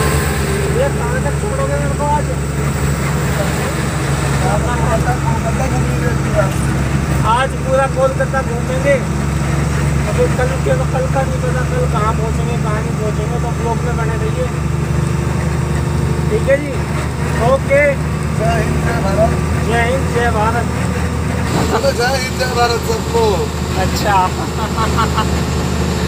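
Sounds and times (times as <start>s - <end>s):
truck diesel engine droning: 0.0s - 26.0s
people talking and laughing: 0.4s - 14.5s, 16.3s - 26.0s.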